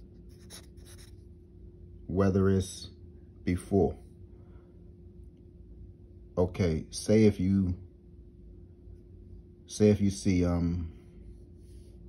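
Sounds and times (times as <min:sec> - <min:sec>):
marker writing on paper: 0:00.3 - 0:01.1.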